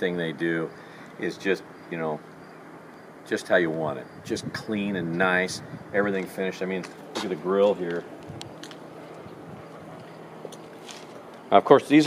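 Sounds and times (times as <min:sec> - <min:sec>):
low hum: 0:00.0 - 0:11.6.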